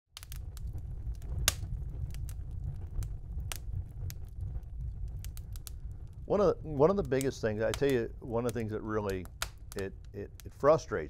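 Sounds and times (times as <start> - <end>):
wood fire crackling: 0.1 - 11.0
sharp pops and snaps: 0.2 - 10.6
steady low rumble: 0.2 - 11.0.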